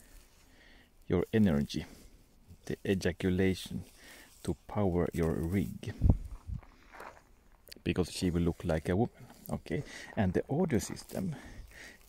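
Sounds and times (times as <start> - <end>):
footsteps on dry grass: 0.0 - 12.0.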